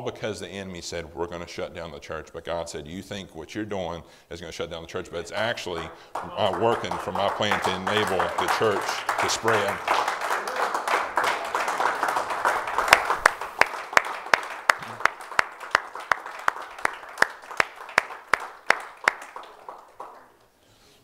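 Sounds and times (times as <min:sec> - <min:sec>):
congregation clapping rhythmically: 0:05.3 - 0:20.5.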